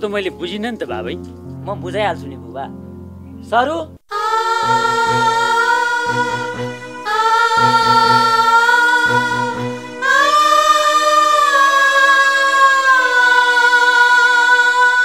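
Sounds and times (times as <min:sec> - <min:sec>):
low pulsing accompaniment: 0:00.0 - 0:04.0, 0:04.6 - 0:10.9
person singing long notes: 0:04.1 - 0:15.0.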